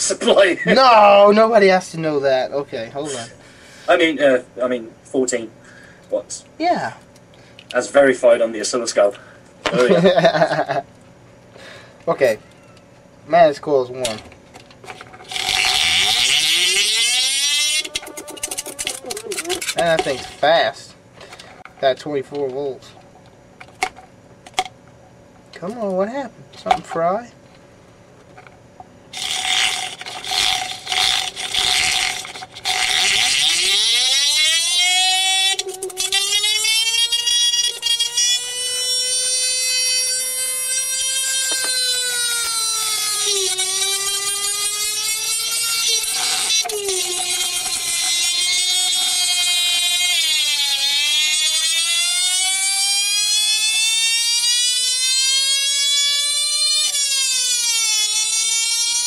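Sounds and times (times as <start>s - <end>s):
motor sputtering and crackling: 8.6s - 12.4s, 14.0s - 24.8s, 28.2s - 59.0s
motor whine rising in pitch: 14.8s - 20.8s, 29.1s - 59.0s.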